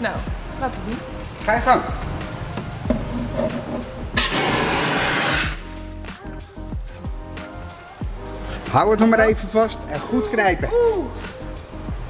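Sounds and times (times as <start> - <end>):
background music: 0.0 - 12.0
fire extinguisher hissing blast: 3.0 - 5.7.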